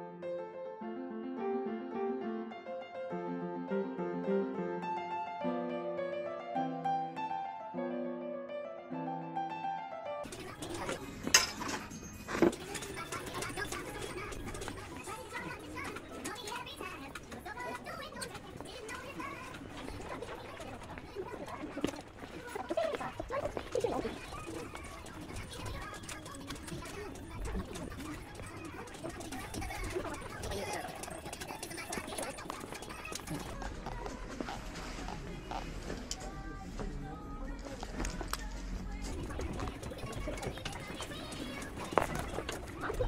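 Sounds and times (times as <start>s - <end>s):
indistinct voices: 10.3s - 43.0s.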